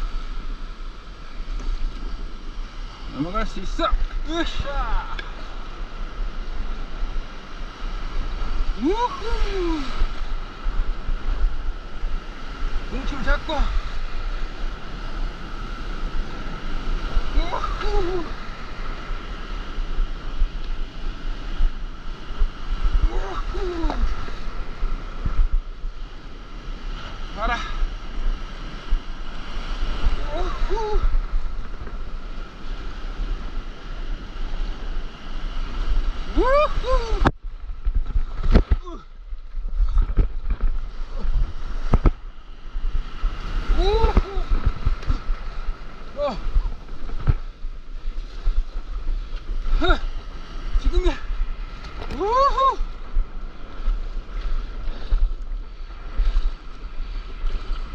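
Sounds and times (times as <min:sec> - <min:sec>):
surf rushing: 0:00.0 - 0:57.9
wind on microphone: 0:00.0 - 0:57.9
person whooping: 0:08.8 - 0:10.0, 0:17.4 - 0:18.3, 0:23.0 - 0:24.1, 0:30.2 - 0:31.2, 0:36.3 - 0:37.3, 0:43.7 - 0:44.6, 0:52.1 - 0:53.0
knocks under wave: 0:39.8 - 0:42.2.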